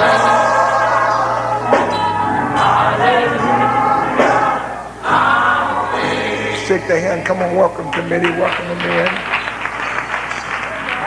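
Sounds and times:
choir singing gospel music: 0.0 - 9.7
sustained instrumental chords: 0.0 - 9.8.

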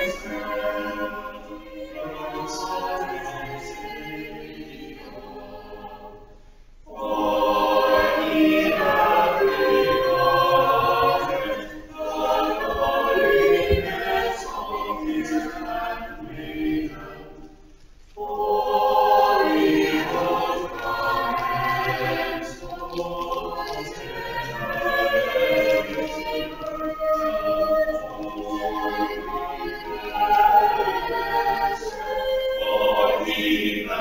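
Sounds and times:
church choir singing: 0.0 - 34.0.

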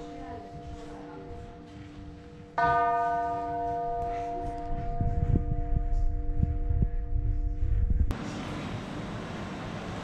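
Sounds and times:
bell hum: 0.0 - 8.1.

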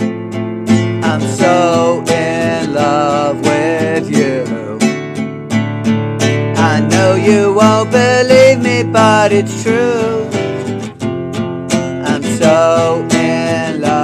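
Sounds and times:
classical guitar strummed: 0.0 - 14.0
man singing: 0.9 - 5.0, 6.5 - 10.8, 11.9 - 14.0.

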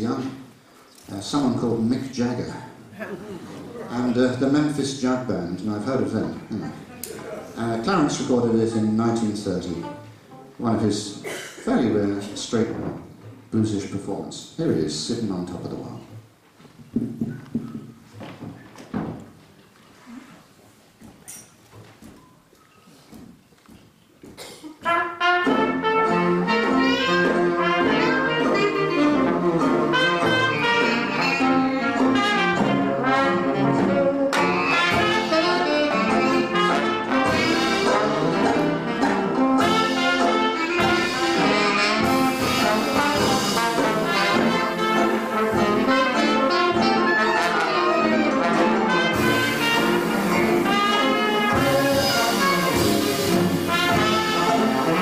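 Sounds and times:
traditional jazz band playing: 0.0 - 11.2, 24.8 - 55.0.

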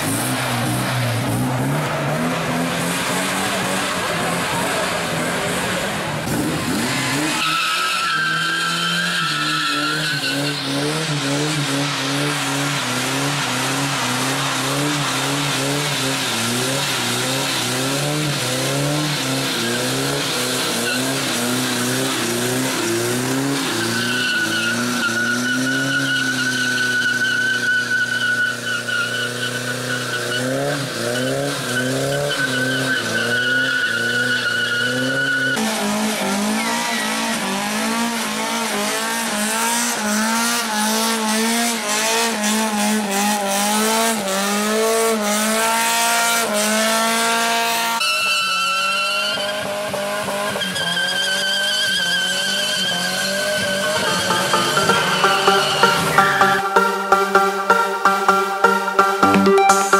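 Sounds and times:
car engine revving: 0.0 - 48.0, 48.9 - 59.4
tyres squealing: 7.0 - 10.8, 50.6 - 56.4.

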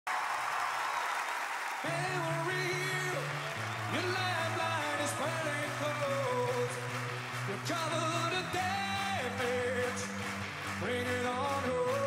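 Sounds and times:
audience applauding: 0.1 - 12.0
person singing: 1.8 - 12.0.

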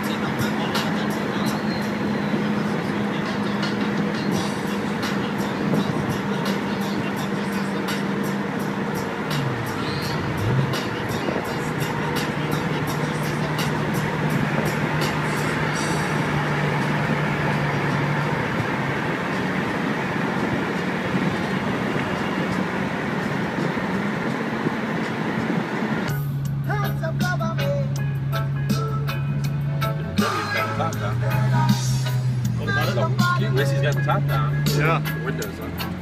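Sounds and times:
car road and engine noise: 0.0 - 36.0.

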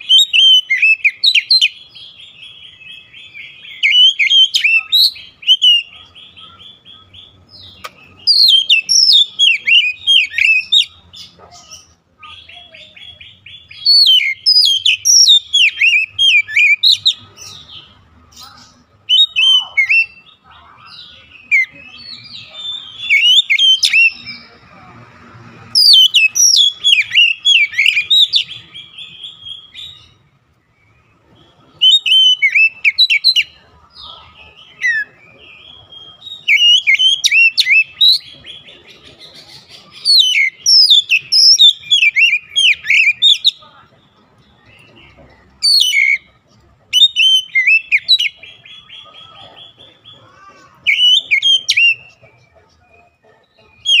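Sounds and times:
bird singing whistles and chirps: 0.0 - 11.0, 12.4 - 17.7, 19.1 - 20.3, 21.0 - 24.4, 25.8 - 30.2, 31.7 - 33.6, 34.6 - 38.7, 39.4 - 43.6, 44.5 - 46.2, 46.9 - 49.3, 50.8 - 52.2.

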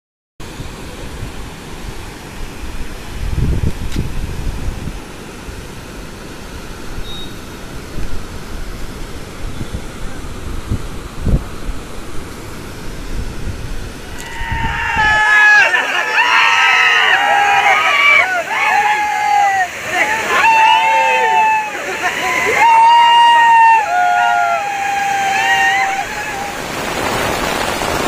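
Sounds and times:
floodwater rushing: 0.4 - 28.0
wind buffeting microphone: 0.6 - 5.2, 7.8 - 15.4, 25.8 - 28.0.

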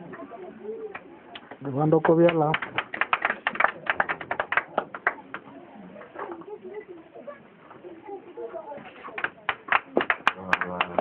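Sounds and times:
faint low talk: 0.0 - 11.0.

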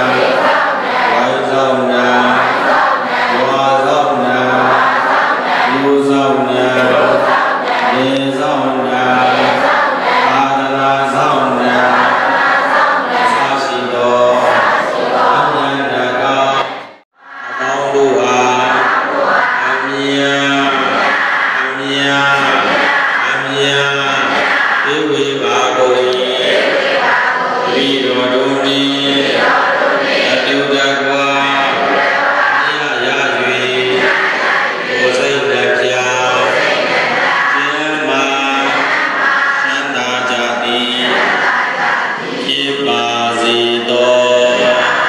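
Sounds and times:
monk chanting over loudspeaker: 0.0 - 45.0.

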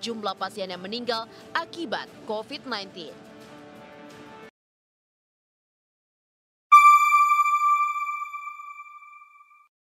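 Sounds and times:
electronic chime: 6.7 - 9.7.

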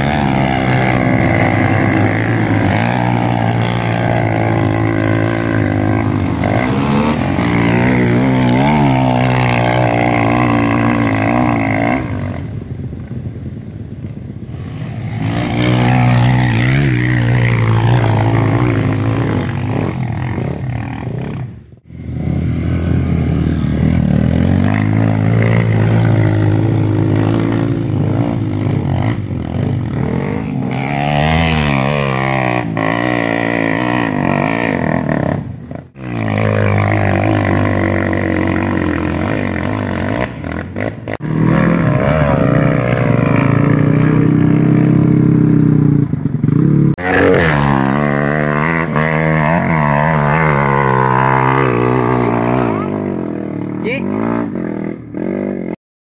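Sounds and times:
dirt bike engines revving: 0.0 - 55.8.

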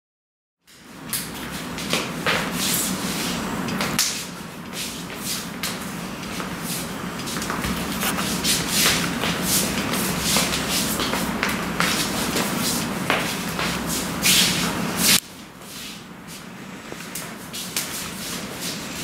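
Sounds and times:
swishes and slaps of sleeves: 0.7 - 16.0, 17.1 - 18.8
steady low hum: 0.7 - 19.0.

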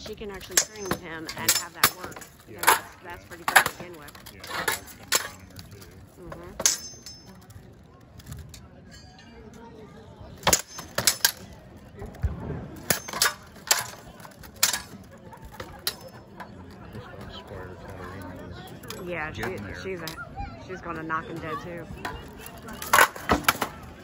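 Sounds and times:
swords clanging on armour: 0.4 - 5.5, 6.5 - 7.4, 10.4 - 11.5, 12.8 - 15.0.

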